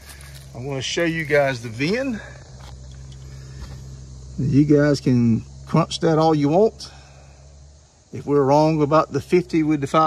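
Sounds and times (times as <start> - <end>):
faint outdoor ambience: 0.0 - 10.0
low background hum: 0.0 - 10.0.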